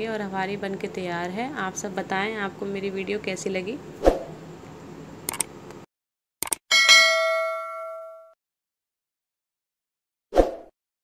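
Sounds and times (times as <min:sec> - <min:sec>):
bright bell ding: 0:06.7 - 0:08.4.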